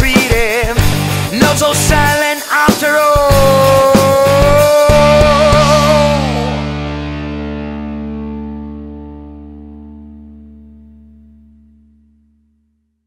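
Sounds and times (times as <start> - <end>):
distorted electric guitar chord: 3.3 - 12.6.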